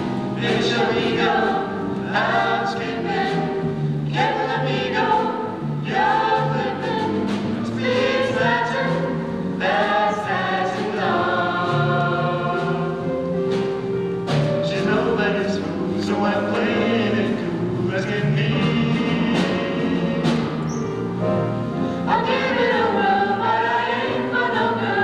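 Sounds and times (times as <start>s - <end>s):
vocal ensemble singing in harmony: 0.0s - 25.0s.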